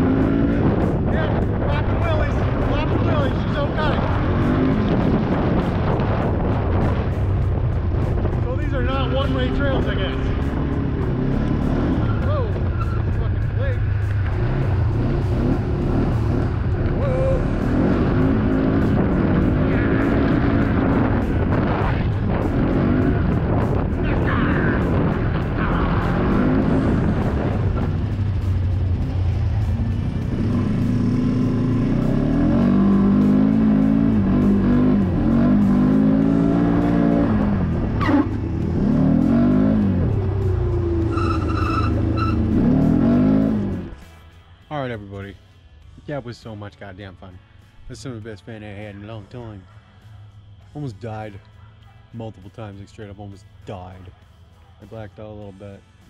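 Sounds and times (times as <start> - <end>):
steady low rumble: 0.0 - 41.1
atv engine revving: 0.0 - 44.1.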